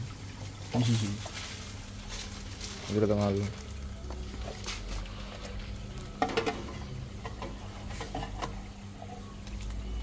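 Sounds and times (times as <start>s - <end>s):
aquarium filters humming: 0.0s - 10.0s
bubbling water: 0.0s - 10.0s.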